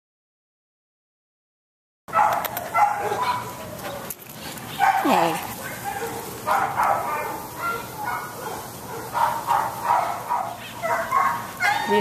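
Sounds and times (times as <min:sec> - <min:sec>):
dog barking: 0:02.1 - 0:03.8, 0:04.8 - 0:12.0.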